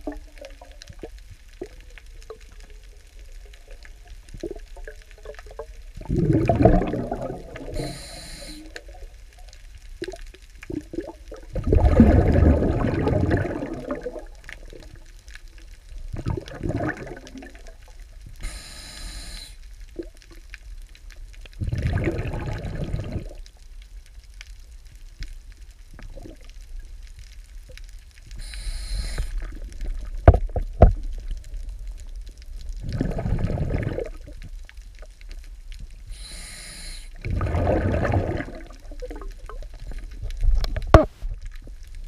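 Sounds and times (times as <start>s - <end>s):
underwater bubbling bursts: 0.0s - 23.8s, 25.9s - 42.0s
water hiss: 6.2s - 9.1s, 18.3s - 19.7s, 28.3s - 29.6s, 36.0s - 39.0s.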